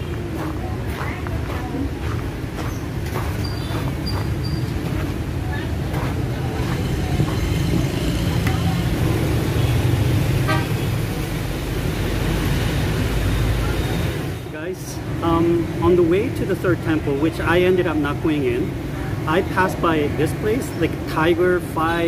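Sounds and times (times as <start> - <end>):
street traffic engine rumble: 0.0 - 22.0
vehicle horns tooting: 9.6 - 11.0.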